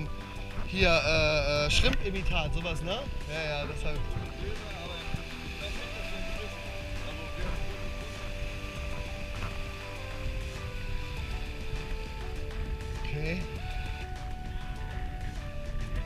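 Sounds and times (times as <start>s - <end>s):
slow held-note music: 0.0s - 16.0s
steady low noise: 0.0s - 16.0s.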